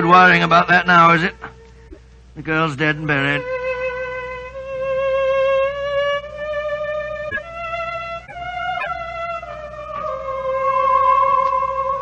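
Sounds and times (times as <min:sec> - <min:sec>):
solo violin slow melody: 0:02.9 - 0:12.0.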